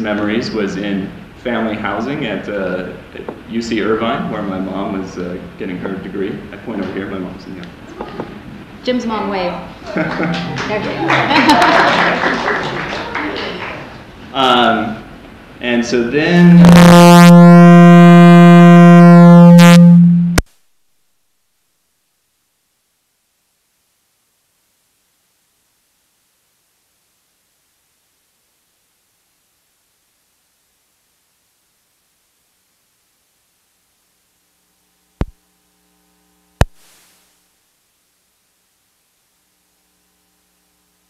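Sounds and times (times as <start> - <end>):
faint electrical hum: 0.0 - 41.0
electronic buzzing tone: 16.2 - 20.5
short hiss: 36.6 - 37.4.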